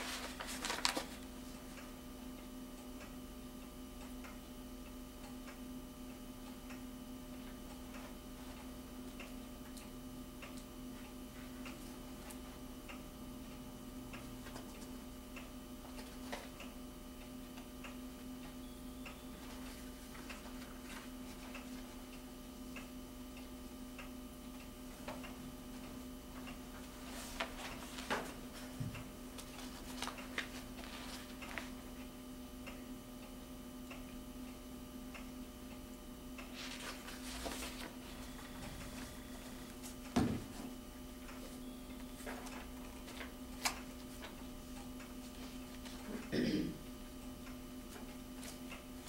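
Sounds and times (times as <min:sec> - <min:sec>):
paper rustling: 0:00.0 - 0:01.3, 0:29.4 - 0:31.8, 0:36.6 - 0:40.0
electrical hum: 0:00.0 - 0:49.0.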